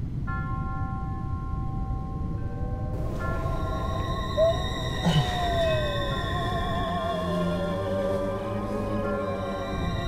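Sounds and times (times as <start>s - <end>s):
eerie synthesizer chord: 2.9s - 10.0s.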